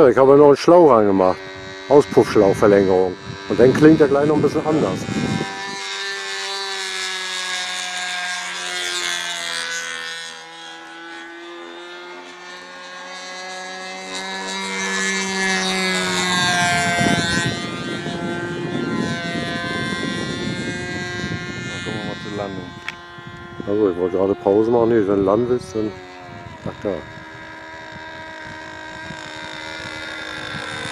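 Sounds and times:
model plane engine droning: 0.0 - 30.9.

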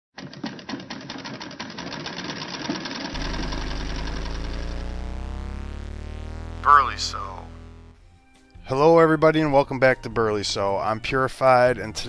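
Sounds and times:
held musical chord: 3.2 - 8.0.

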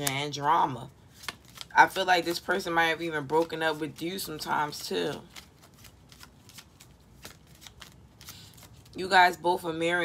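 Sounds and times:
cards being shuffled: 1.0 - 9.0.

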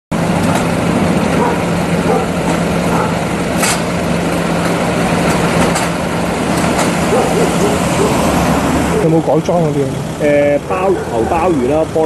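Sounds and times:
engine idling: 0.1 - 12.0
faint voices: 8.9 - 12.0.

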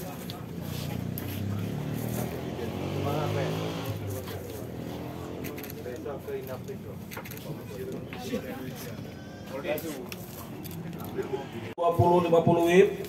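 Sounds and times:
murmur of voices: 0.0 - 13.0
vehicle engine passing by: 0.4 - 6.1.

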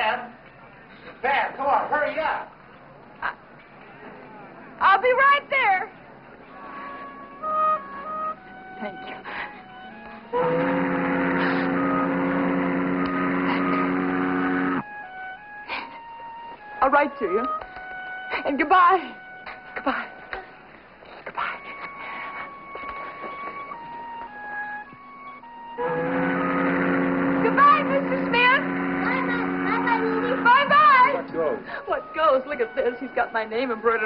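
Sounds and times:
soft background music: 5.9 - 34.0
ship's horn blast: 6.5 - 9.2, 9.8 - 15.4, 25.4 - 34.0.

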